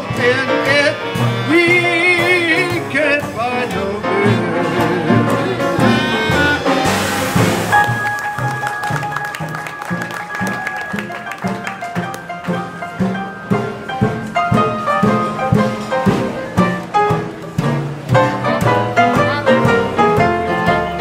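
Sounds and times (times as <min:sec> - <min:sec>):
banjo: 0:00.0 - 0:21.0
piano: 0:00.0 - 0:21.0
string bass: 0:00.0 - 0:21.0
trombone: 0:00.0 - 0:21.0
clarinet: 0:04.1 - 0:13.6.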